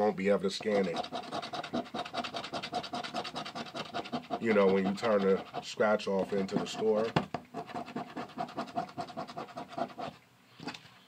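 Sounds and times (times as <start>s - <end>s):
scratching lottery ticket coating: 0.5s - 10.2s.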